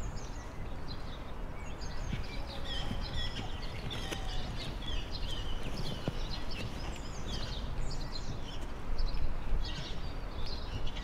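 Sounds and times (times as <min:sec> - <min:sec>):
birds chirping: 0:00.0 - 0:11.0
low outdoor background noise: 0:00.0 - 0:11.0.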